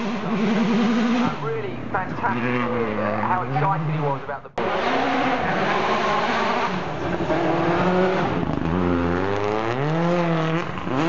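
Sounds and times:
rally car engine revving: 0:00.0 - 0:11.0.

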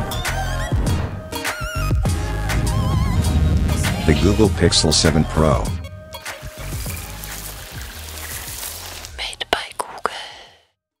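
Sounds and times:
breathy whisper-like hiss: 0:06.6 - 0:10.6.

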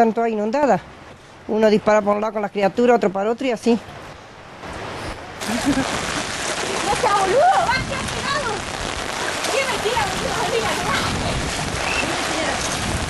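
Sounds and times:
heavy rain with splashing water: 0:03.4 - 0:13.0
voices calling: 0:05.4 - 0:12.8.

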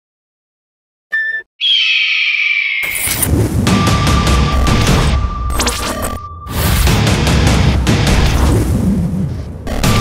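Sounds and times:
bird of prey screeching: 0:01.6 - 0:03.1.

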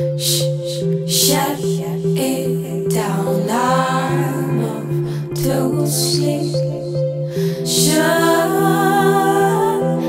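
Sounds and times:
synthesizer chord and bass: 0:00.0 - 0:10.0
woman singing a long note: 0:00.2 - 0:07.0, 0:07.7 - 0:10.0.

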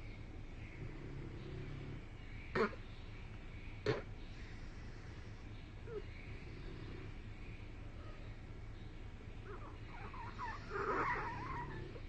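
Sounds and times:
dog whining: 0:09.5 - 0:12.0.

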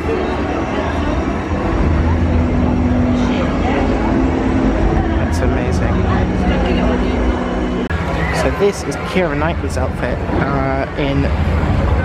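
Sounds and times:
held low tones: 0:00.0 - 0:12.0
steady low rumble: 0:00.0 - 0:12.0.

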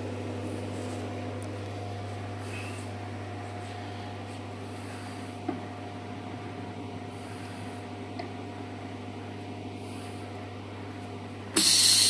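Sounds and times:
welder electrical hum: 0:00.0 - 0:12.0.

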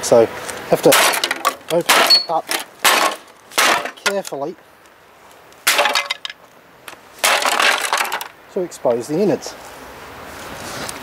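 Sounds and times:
rough plastic scraping: 0:00.8 - 0:04.4, 0:05.7 - 0:08.3.

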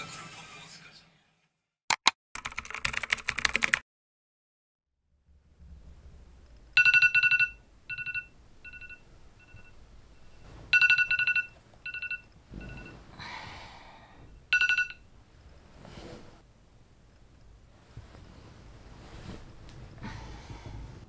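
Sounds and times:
trilling phone ringtone: 0:06.8 - 0:13.0, 0:14.4 - 0:15.1.

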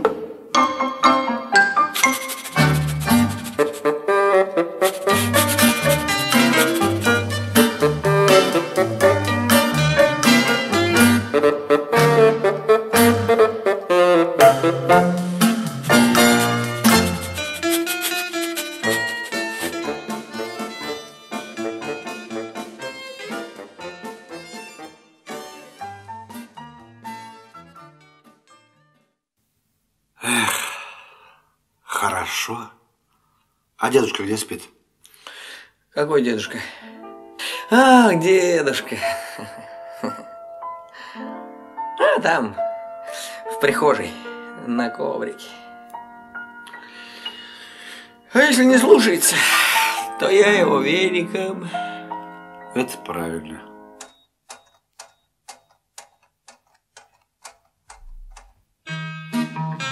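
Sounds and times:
person sighing: 0:30.2 - 0:31.5
clock ticking: 0:54.0 - 0:58.7.

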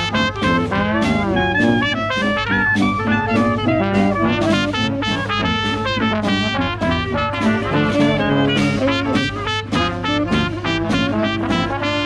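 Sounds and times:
jazz band playing upbeat tune: 0:00.0 - 0:12.0
snare drum beat: 0:00.0 - 0:12.0.

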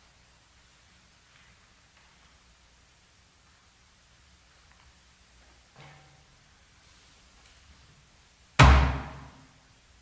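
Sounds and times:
loud slam with reverberation: 0:08.6 - 0:09.5.

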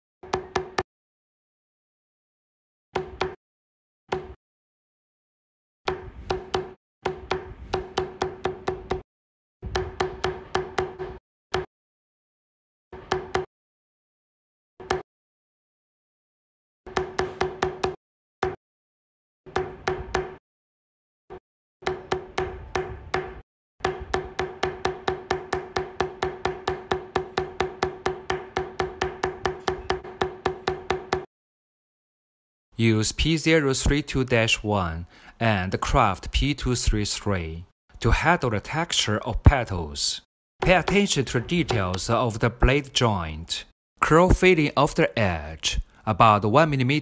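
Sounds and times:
mallet tapping metal stamp: 0:05.9 - 0:09.0, 0:09.7 - 0:11.7, 0:21.8 - 0:31.3.

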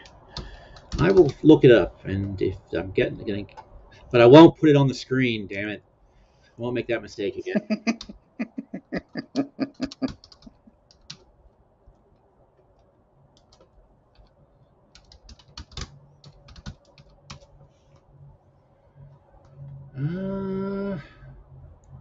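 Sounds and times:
computer keyboard typing: 0:00.0 - 0:01.5, 0:09.2 - 0:11.2, 0:13.4 - 0:14.3, 0:14.9 - 0:17.5
man laughing: 0:07.4 - 0:10.6.

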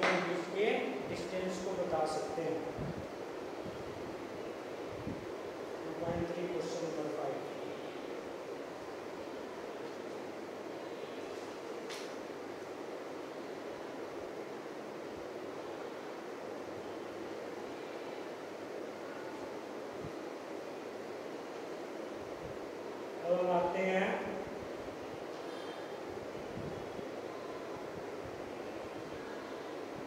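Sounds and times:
steady background hiss: 0:00.0 - 0:30.0.

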